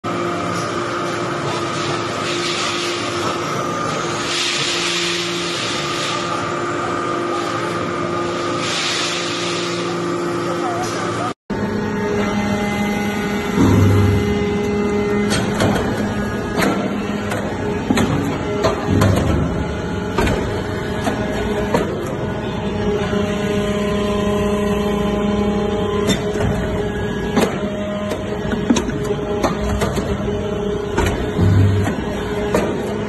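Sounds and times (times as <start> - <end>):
hydraulic unit humming: 11.5 - 33.0.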